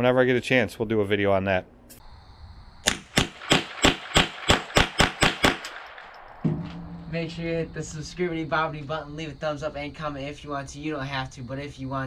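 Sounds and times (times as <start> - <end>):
rifle shots fired rapidly: 2.8 - 6.6.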